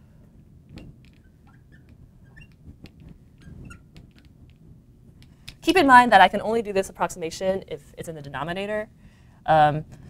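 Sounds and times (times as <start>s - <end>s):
marker squeaking on glass: 0.7s - 4.7s.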